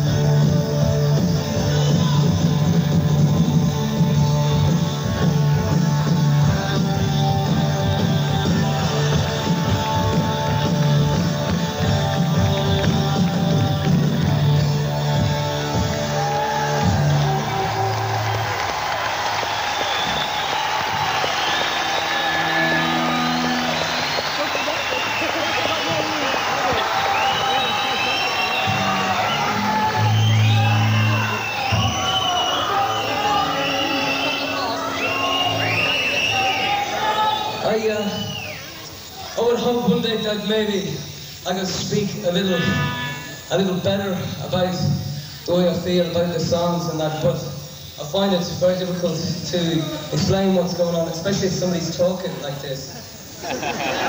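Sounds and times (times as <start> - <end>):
live rock band playing: 0.0 - 18.6, 20.9 - 36.4
audience cheering and whistling: 0.0 - 41.4, 52.3 - 54.0.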